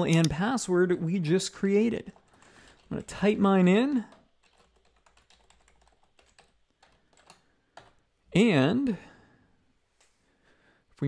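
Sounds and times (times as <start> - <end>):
typing on computer keyboard: 2.1 - 8.0.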